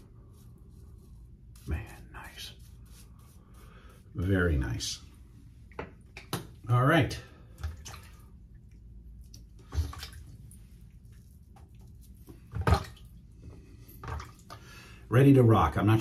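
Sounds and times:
water splashes and drips: 7.5 - 14.8.

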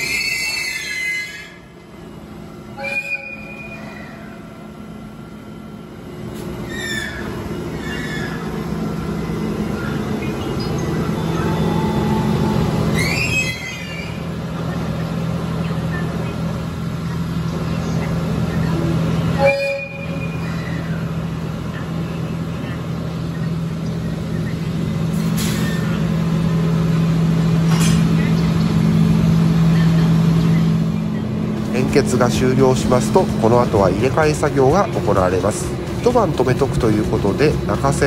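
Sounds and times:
locomotive engine hum: 0.0 - 38.0
locomotive horn toot: 2.7 - 4.4, 19.4 - 20.5.

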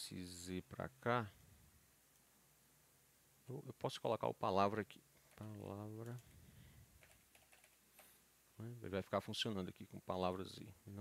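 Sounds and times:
keyboard typing: 7.0 - 8.2.

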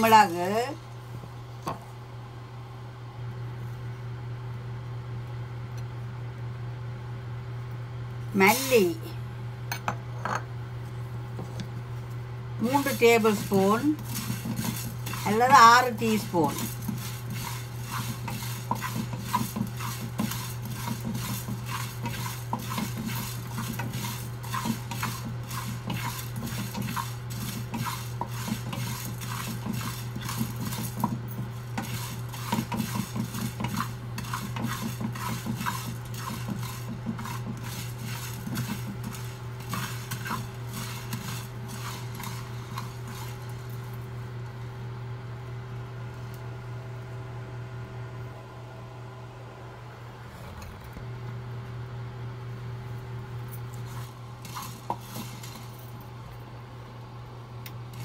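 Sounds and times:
steady low hum: 0.0 - 58.0
wooden spatula scraping spices in pan: 12.6 - 43.6, 53.8 - 55.7.

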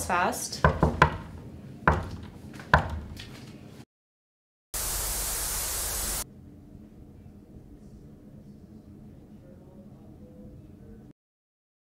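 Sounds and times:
static hiss: 4.8 - 6.2.

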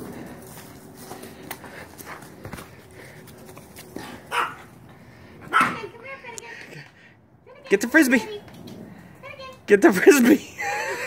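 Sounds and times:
dog barking: 4.3 - 4.7, 5.5 - 5.8.

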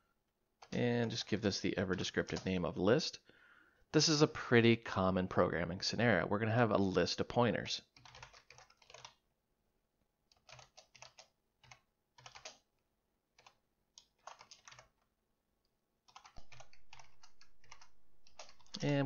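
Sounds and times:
computer keyboard typing: 1.9 - 2.6, 7.9 - 9.2, 10.3 - 12.7, 13.3 - 15.0, 16.0 - 19.0.

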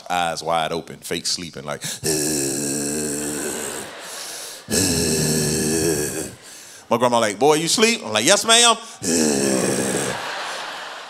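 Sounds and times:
man groaning: 1.9 - 6.4, 9.0 - 10.4.

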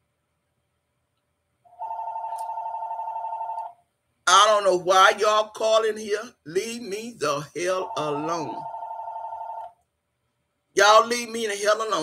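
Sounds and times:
telephone ringing: 1.7 - 3.8, 7.7 - 9.7.

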